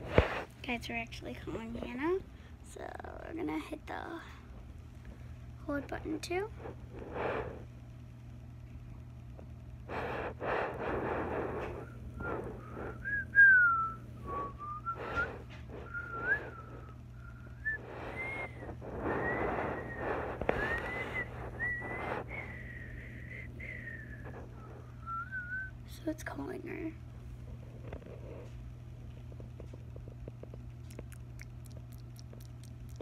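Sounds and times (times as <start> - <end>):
low steady hum: 0.0 - 33.0
person whistling a tune: 12.9 - 24.2, 25.0 - 25.7.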